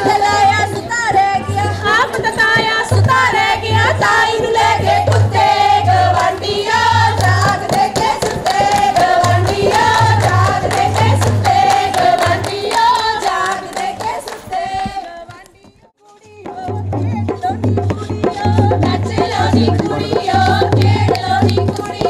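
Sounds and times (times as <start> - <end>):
women singing in chorus: 0.0 - 22.0
rapid hand clapping: 7.1 - 15.6.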